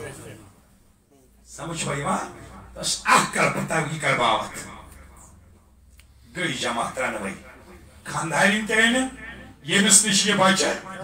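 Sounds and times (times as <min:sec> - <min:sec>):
man preaching through a microphone: 0:01.5 - 0:05.2, 0:06.3 - 0:11.0.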